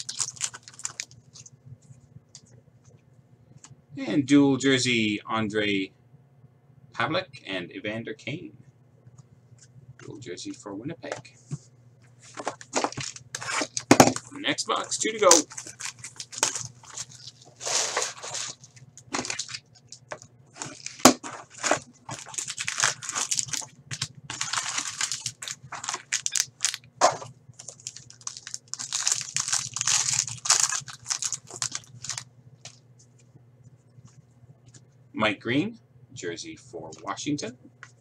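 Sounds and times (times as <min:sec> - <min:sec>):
foil packs rustling: 0:00.0 - 0:01.5, 0:12.2 - 0:32.8
plastic wrapping tearing and crinkling: 0:00.0 - 0:01.5, 0:12.3 - 0:14.4, 0:15.0 - 0:32.8.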